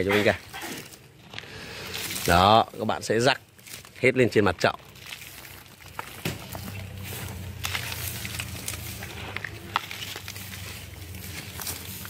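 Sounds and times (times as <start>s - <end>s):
dry leaves rustling by hand: 0.0s - 12.0s.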